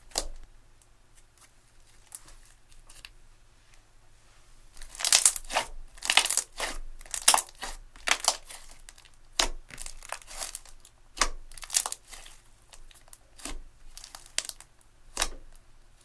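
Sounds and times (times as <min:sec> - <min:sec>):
slime squishing and crackling: 0:04.7 - 0:16.0.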